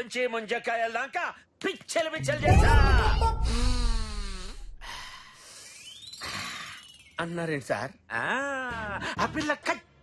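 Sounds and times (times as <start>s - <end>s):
crashing comic sound effect: 2.3s - 4.0s.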